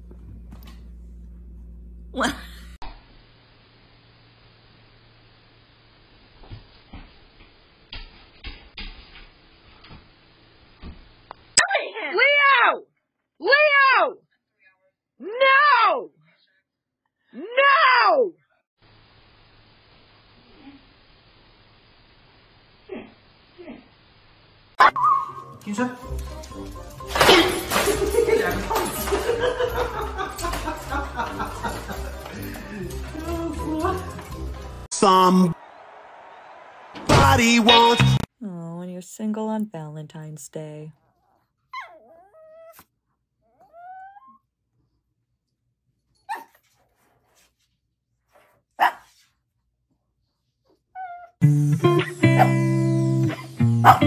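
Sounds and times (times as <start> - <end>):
dog whining: 41.2 - 44.5, 50.9 - 51.4.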